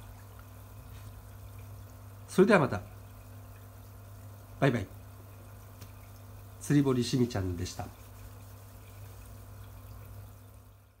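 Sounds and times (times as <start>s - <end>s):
low pump hum: 0.0s - 11.0s
water splashing and trickling: 0.0s - 11.0s.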